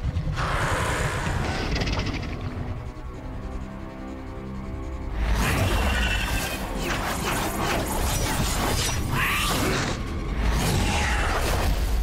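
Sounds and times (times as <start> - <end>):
steady low rumble: 0.0 - 5.4.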